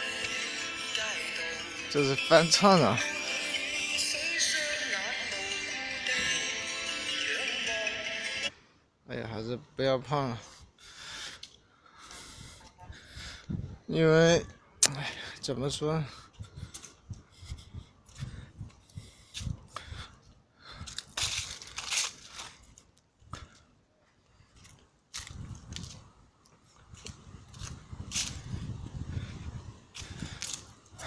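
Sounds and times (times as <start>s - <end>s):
person breathing: 10.4s - 13.6s, 16.1s - 21.1s, 28.3s - 31.0s
footsteps crunching dry leaves: 20.9s - 22.9s, 24.6s - 26.0s, 27.0s - 28.4s.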